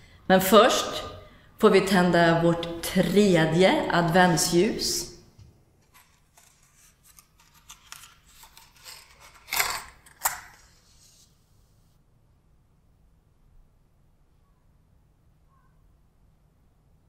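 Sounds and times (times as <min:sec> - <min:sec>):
matchbox clicks and rustles: 0:05.9 - 0:10.8.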